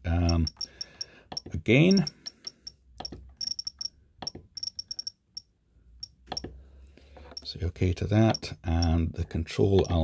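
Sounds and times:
short high-pitched beeps: 0:00.2 - 0:01.1, 0:03.4 - 0:04.0, 0:04.6 - 0:06.2.

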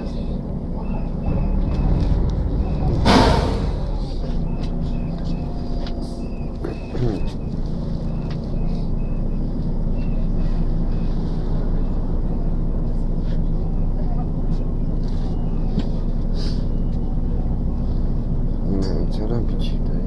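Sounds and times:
faint voices: 0:00.0 - 0:20.0
vehicle engine humming: 0:00.0 - 0:20.0.

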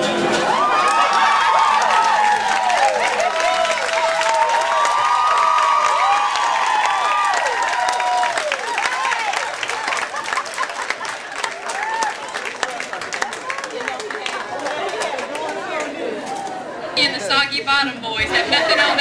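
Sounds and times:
crowd chatter: 0:00.0 - 0:06.9, 0:07.7 - 0:19.0
crowd whooping: 0:00.0 - 0:14.0
audience clapping: 0:00.0 - 0:16.0.

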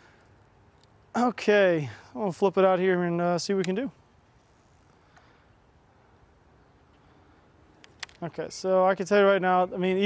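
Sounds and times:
faint outdoor hiss: 0:00.0 - 0:10.0.

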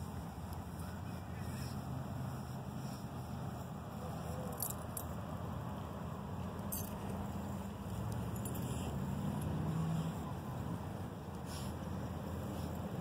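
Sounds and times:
low engine-like hum: 0:00.0 - 0:13.0
light clicks and rattles: 0:06.4 - 0:09.6.

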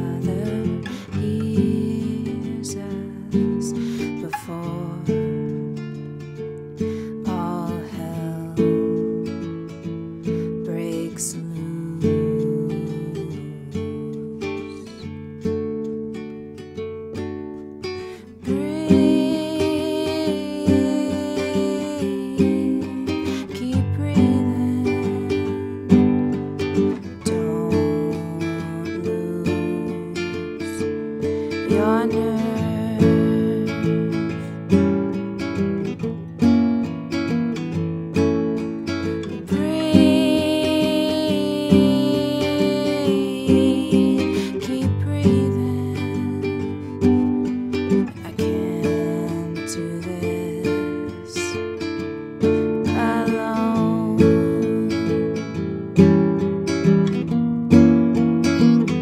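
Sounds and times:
nylon-string guitar plucked: 0:00.0 - 0:59.0.

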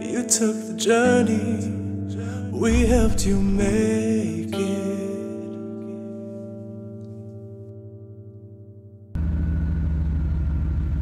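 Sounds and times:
car engine running: 0:09.2 - 0:11.0.

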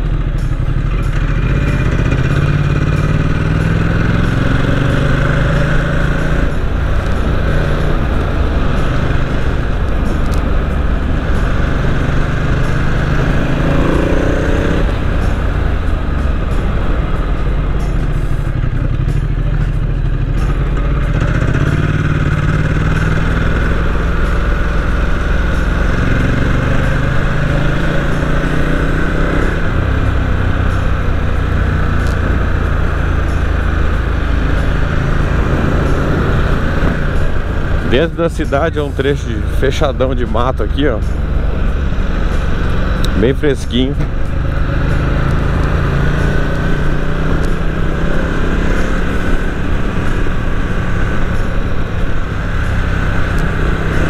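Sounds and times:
motorcycle engine accelerating: 0:00.0 - 0:54.0.

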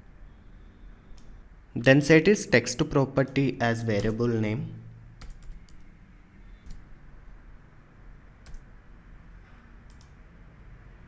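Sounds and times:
keyboard keystrokes: 0:03.2 - 0:04.3, 0:05.2 - 0:05.9, 0:08.4 - 0:08.7, 0:09.9 - 0:10.2.

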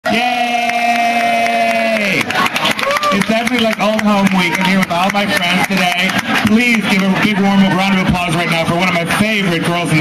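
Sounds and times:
person speaking into microphone: 0:03.1 - 0:10.0.

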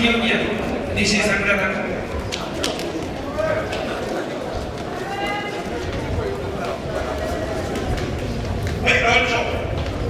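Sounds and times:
hubbub of voices: 0:00.0 - 0:10.0.

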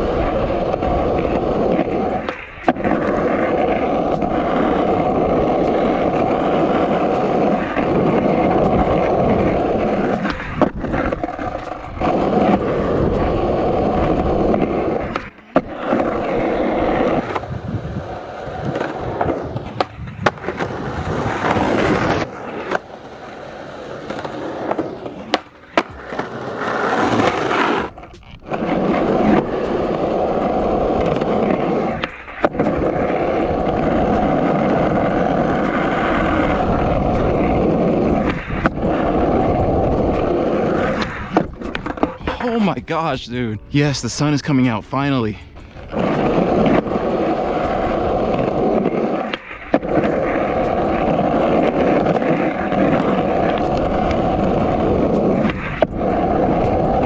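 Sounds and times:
skateboard wheels rolling on concrete: 0:00.0 - 0:57.0.

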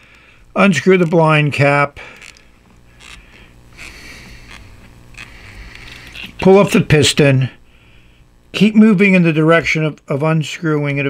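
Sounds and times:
soft rubbing: 0:00.0 - 0:06.6.

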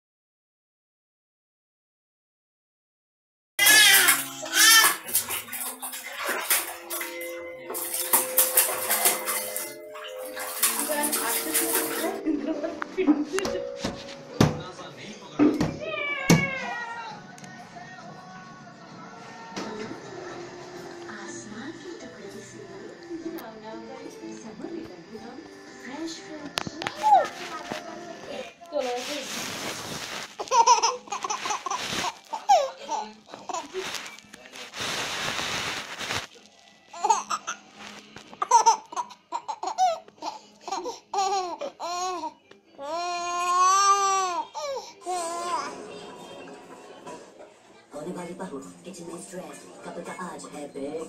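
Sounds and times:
baby squealing: 0:03.6 - 0:05.0, 0:30.4 - 0:33.7
water splashing in a tub: 0:03.6 - 0:12.2
baby laughing: 0:30.4 - 0:34.0, 0:36.9 - 0:37.7, 0:38.3 - 0:45.8.

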